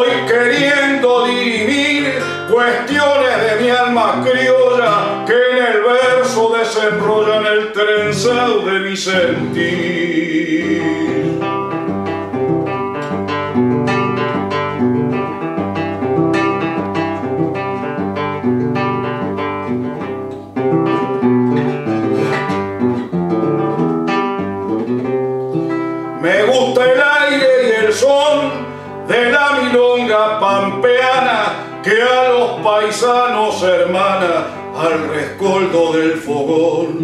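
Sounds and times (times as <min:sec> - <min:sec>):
man's voice: 0:00.0 - 0:11.6, 0:26.2 - 0:37.0
classical guitar playing: 0:00.0 - 0:37.0.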